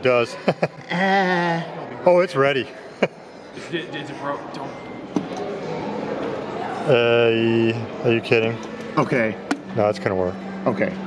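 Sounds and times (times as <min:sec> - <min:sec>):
arcade background din: 0:00.0 - 0:11.0.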